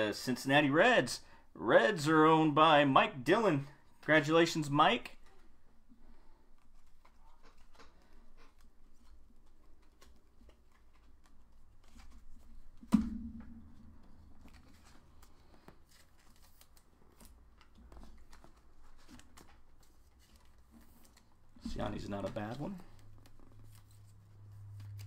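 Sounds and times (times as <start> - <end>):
cards clicking and rustling: 6.6 - 12.9, 13.7 - 25.0.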